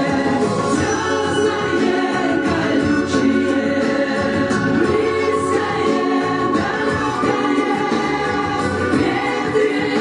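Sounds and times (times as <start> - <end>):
choral song with instrumental backing: 0.0 - 10.0.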